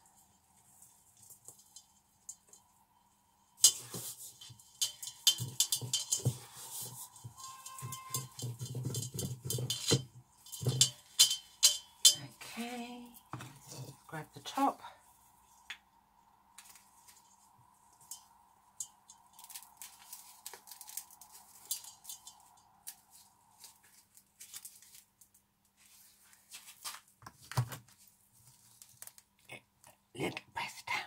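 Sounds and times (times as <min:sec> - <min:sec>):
crunching and scraping of mixture: 0:03.5 - 0:14.2, 0:18.8 - 0:29.4.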